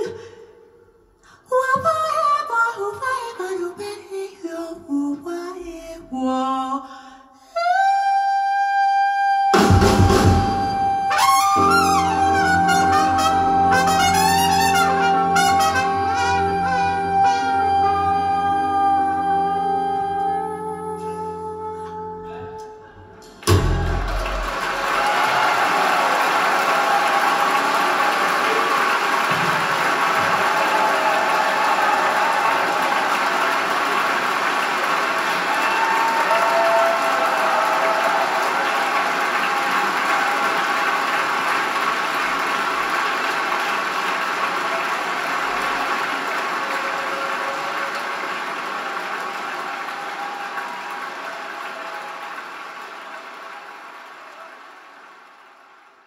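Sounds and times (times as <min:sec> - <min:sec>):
audience applause: 0:09.8 - 0:18.2, 0:23.5 - 0:56.0.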